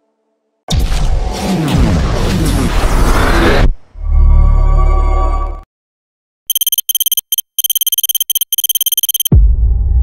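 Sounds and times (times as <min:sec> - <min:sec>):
electronic typing beeps: 0:06.5 - 0:09.3.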